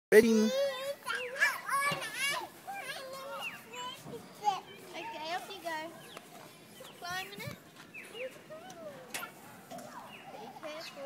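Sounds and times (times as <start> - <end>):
toddler babbling: 0.3 - 4.7.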